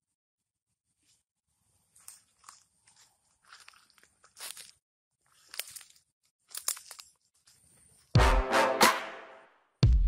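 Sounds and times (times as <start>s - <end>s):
footsteps crunching dry leaves: 1.9s - 7.0s.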